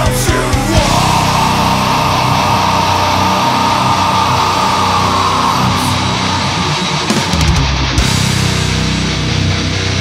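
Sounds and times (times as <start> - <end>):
pounding drums: 0.0 - 8.9
distorted guitar chord: 0.8 - 10.0.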